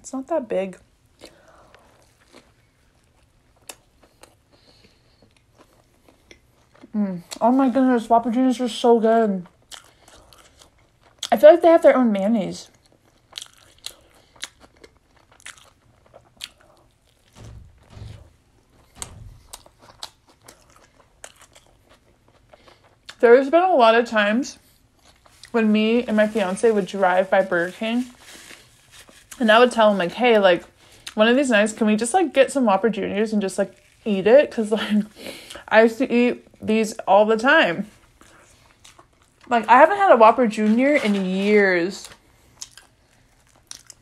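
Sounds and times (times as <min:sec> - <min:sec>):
person chewing burger: 0:01.2 - 0:07.4, 0:09.4 - 0:11.3, 0:12.7 - 0:17.4, 0:19.4 - 0:23.2, 0:24.6 - 0:25.5, 0:38.0 - 0:39.5, 0:42.2 - 0:44.0.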